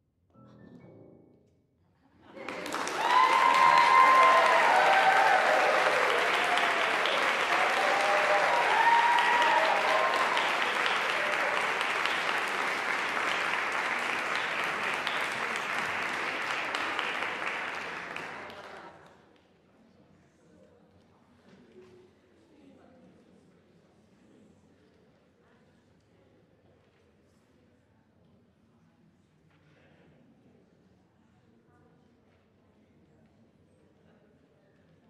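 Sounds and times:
audience applauding: 2.4s - 19.0s.

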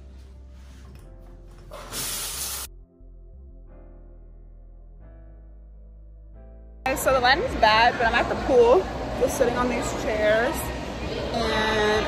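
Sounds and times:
background music: 0.0s - 8.9s
water spraying from shower head: 1.9s - 2.7s.

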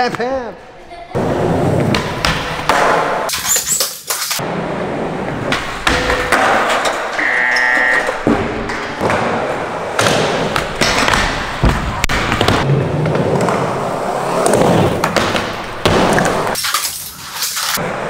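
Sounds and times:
skateboard wheels rolling: 7.8s - 18.0s
skateboard clacks and thuds: 8.2s - 13.7s.

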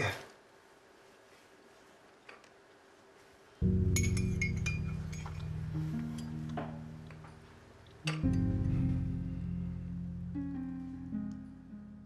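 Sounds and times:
music with deep bass notes: 3.6s - 12.0s.

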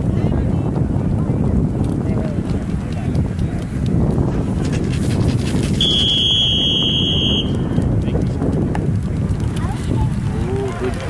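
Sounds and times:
wind rumble on microphone: 0.0s - 11.0s
referee's whistle blast: 5.8s - 7.6s.

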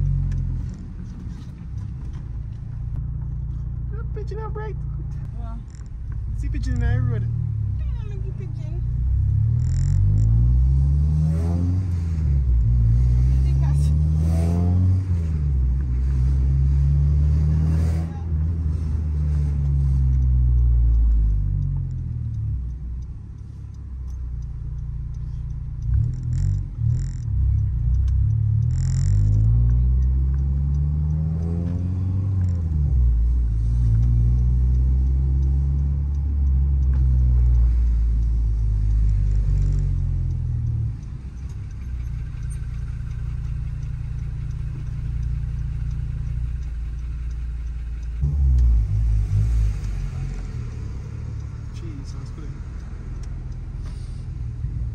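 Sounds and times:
car engine revving: 0.0s - 54.9s.

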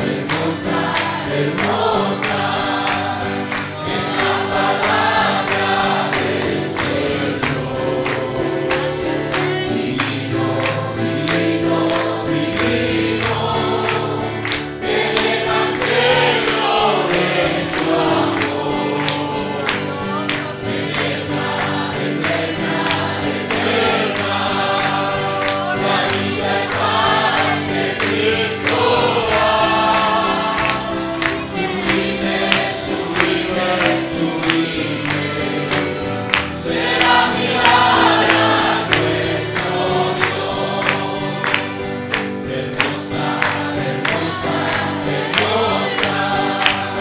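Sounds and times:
congregation singing gospel song: 0.0s - 47.0s
people clapping along: 0.0s - 47.0s.

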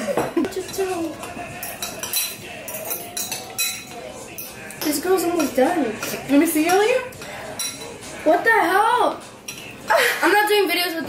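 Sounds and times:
forks clinking against bowls: 0.2s - 8.2s, 9.2s - 9.9s.

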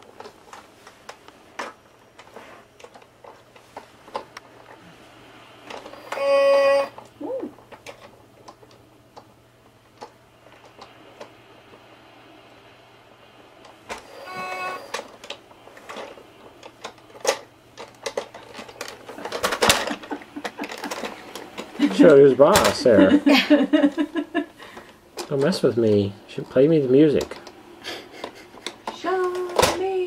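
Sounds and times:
electronic toy tone: 5.9s - 7.0s, 14.0s - 15.0s.

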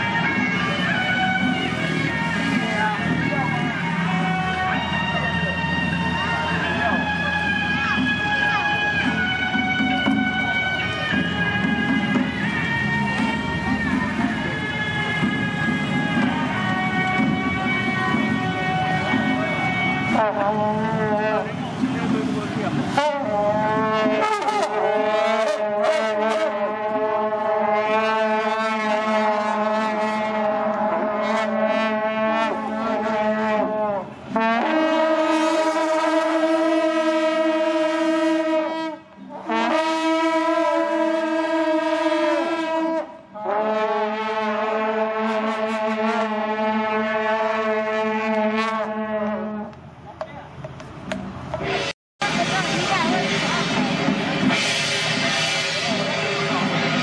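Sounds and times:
music: 0.0s - 49.7s, 50.8s - 57.0s
brass horns blowing long blasts: 0.0s - 49.8s, 51.8s - 57.0s.

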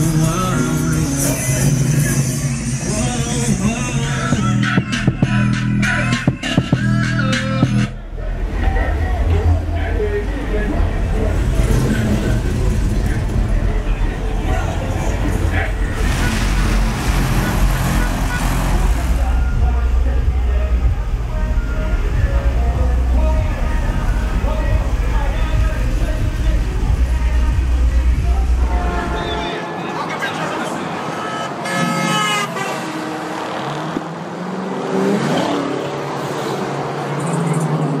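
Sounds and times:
car engine rumbling: 0.0s - 29.4s
crowd noise: 0.0s - 38.0s
vehicles passing: 0.0s - 38.0s
people talking: 7.0s - 31.4s
car horn: 28.5s - 33.4s.

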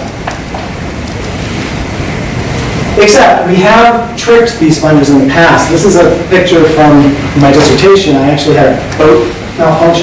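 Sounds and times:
lecture hall room hiss: 0.0s - 10.0s.

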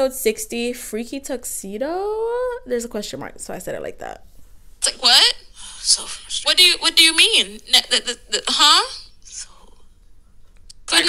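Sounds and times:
woman talking: 0.0s - 4.2s, 4.8s - 9.5s
woman breathing: 5.5s - 6.0s.

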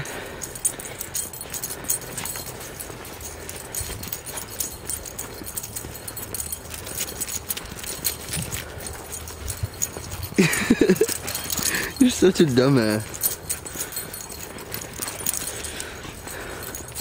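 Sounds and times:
person's voice: 11.7s - 13.1s.

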